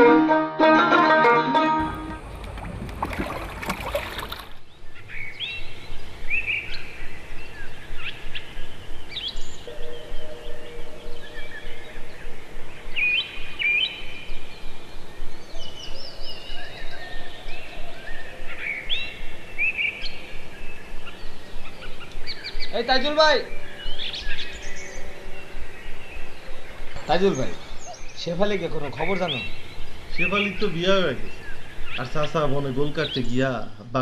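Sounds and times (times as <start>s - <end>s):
outdoor background hiss: 0.0s - 34.0s
birds chirping: 1.8s - 34.0s.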